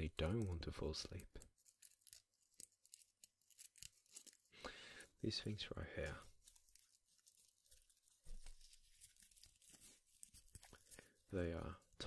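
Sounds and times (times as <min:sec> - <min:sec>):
petals crackling between fingers: 0:00.0 - 0:04.6, 0:05.3 - 0:12.0.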